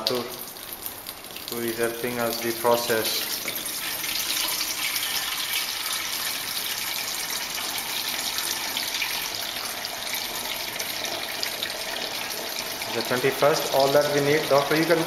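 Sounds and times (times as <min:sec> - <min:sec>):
liquid pouring and splashing: 0:00.0 - 0:15.0.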